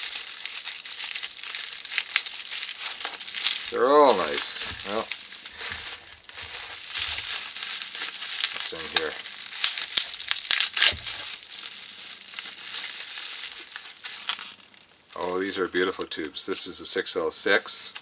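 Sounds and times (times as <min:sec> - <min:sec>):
bubble wrap crinkling and rustling: 0:00.0 - 0:16.7, 0:17.4 - 0:18.0.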